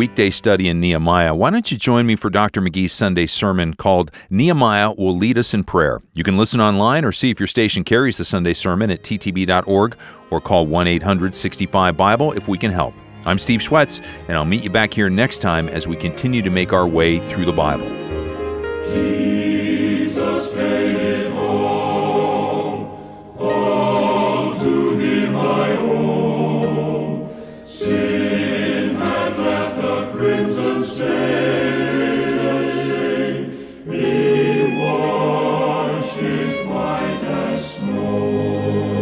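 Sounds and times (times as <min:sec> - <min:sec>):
choir singing: 0:15.8 - 0:39.0.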